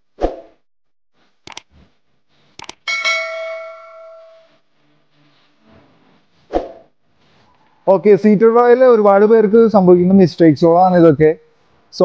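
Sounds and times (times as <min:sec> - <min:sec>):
sharp clicks: 0:01.4 - 0:01.7, 0:02.6 - 0:02.9
bell-like ding: 0:02.9 - 0:04.6.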